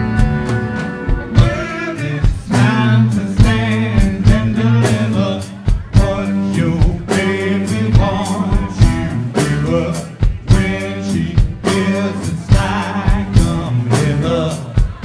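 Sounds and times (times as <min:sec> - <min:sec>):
funk rock band playing: 0:00.0 - 0:15.0.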